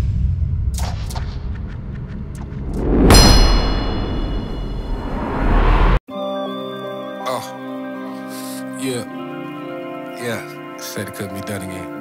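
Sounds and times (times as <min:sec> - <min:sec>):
deep rumble: 0:02.1 - 0:06.0
heavy metallic impact clang: 0:02.8 - 0:05.9.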